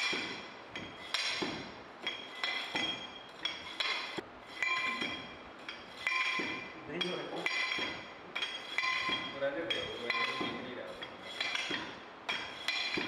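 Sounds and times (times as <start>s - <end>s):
drop rammer striking metal mould: 11.4s - 13.0s.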